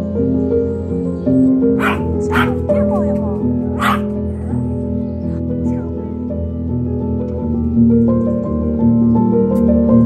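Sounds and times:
background music: 0.0s - 10.0s
small dog barking: 1.8s - 3.2s, 3.8s - 4.2s.

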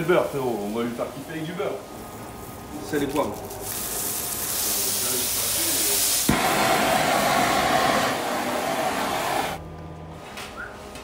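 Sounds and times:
burger patties sizzling in a pan: 3.3s - 6.3s.

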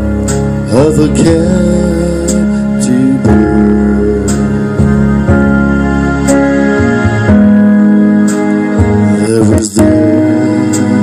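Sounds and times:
keyboard and guitar chords: 0.0s - 11.0s.

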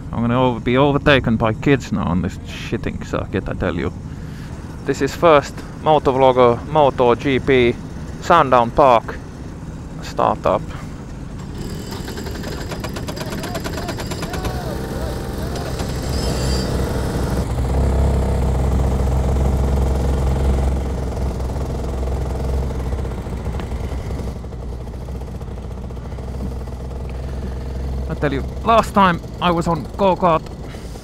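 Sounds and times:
go-kart engines running: 0.0s - 31.0s.

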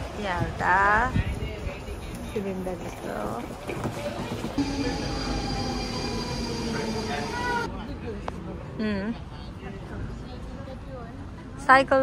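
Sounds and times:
train rumble: 0.0s - 7.7s
train whine: 4.6s - 7.7s.

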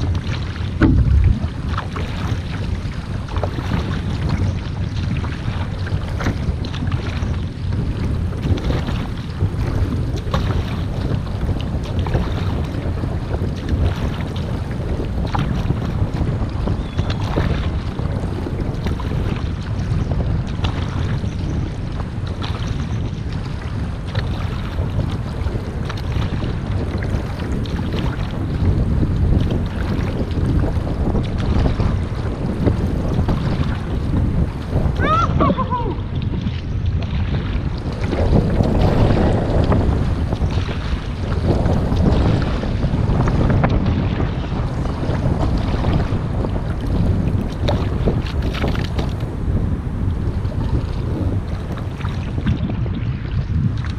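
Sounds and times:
paddle splashing in water: 0.0s - 53.9s
water rushing along hull: 0.0s - 53.9s
wind buffeting microphone: 0.0s - 53.9s.

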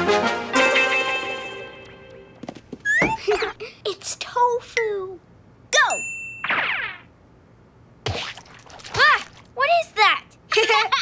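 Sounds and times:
high cartoon ping: 5.9s - 7.1s.

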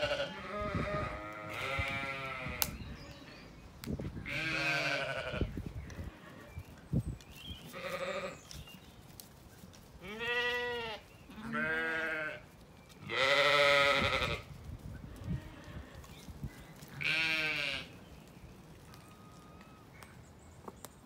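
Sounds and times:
sheep bleating: 0.0s - 2.6s, 4.3s - 5.5s, 10.0s - 12.4s, 13.1s - 14.5s, 17.0s - 17.9s.

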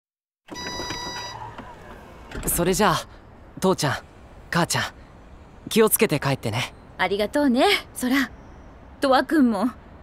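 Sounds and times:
road vehicle noise: 0.5s - 10.0s.

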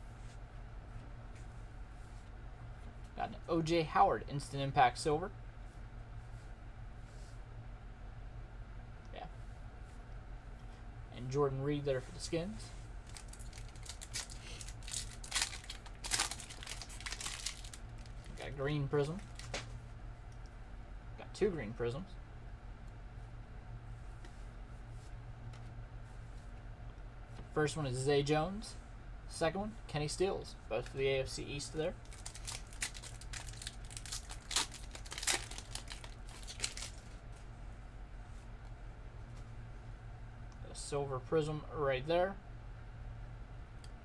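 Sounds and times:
foil wrapper crinkling: 13.0s - 19.7s, 31.9s - 37.2s.

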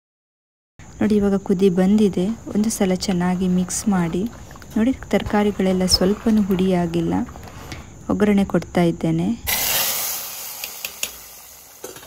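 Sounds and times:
woman speaking: 1.0s - 9.5s
hot oil sizzling in a pot: 9.5s - 12.0s.

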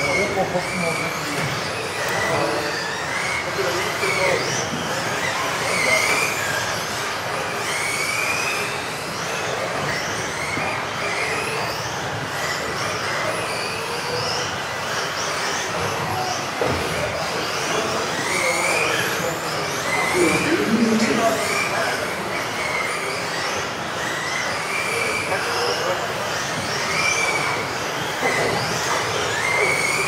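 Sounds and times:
rc car motors whining: 0.0s - 30.0s.

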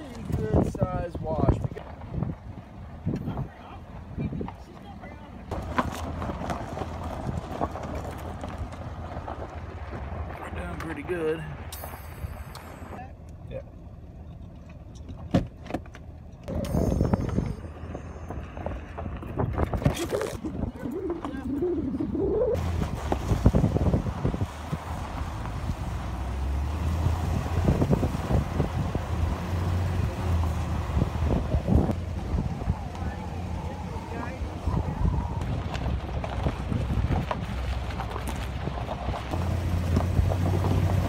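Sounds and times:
tyres crunching on gravel: 0.0s - 13.0s, 17.4s - 21.4s, 22.6s - 41.0s
vehicle body rattling: 0.0s - 13.0s, 22.6s - 41.0s
truck engine rumble: 0.0s - 41.0s.

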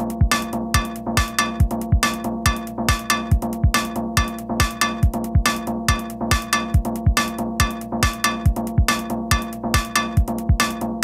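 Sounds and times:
techno music: 0.0s - 11.0s
kick drum: 0.2s - 10.7s.

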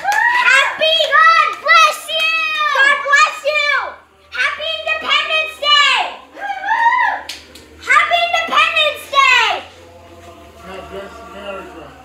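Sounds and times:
children shouting excitedly: 0.0s - 9.6s.

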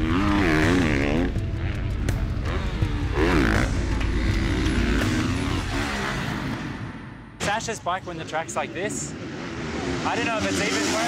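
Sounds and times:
motocross bike engine passing: 0.0s - 7.1s, 8.1s - 11.0s.

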